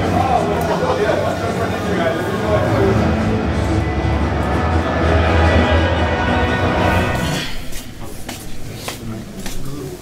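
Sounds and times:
background music: 0:00.0 - 0:09.0.

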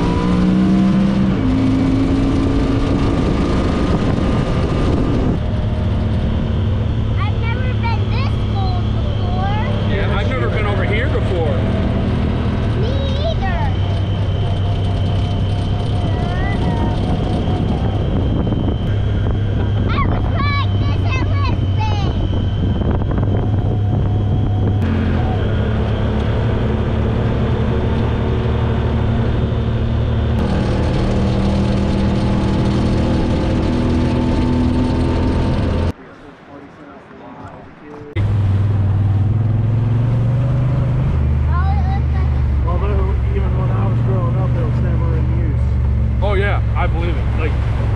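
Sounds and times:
wind noise: 0:00.0 - 0:36.0
engine running steadily: 0:00.0 - 0:47.9.

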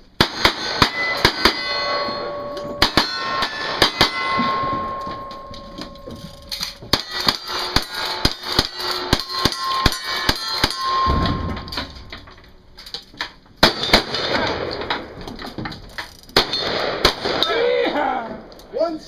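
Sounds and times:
steel target ringing: 0:00.2 - 0:12.8, 0:16.4 - 0:17.7.

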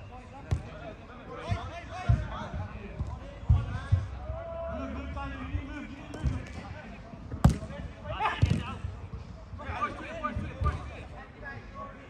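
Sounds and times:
football kicks thudding: 0:07.3 - 0:07.7.

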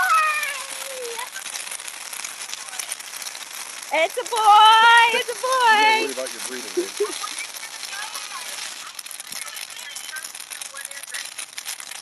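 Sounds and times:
fireworks crackling: 0:00.0 - 0:12.0.

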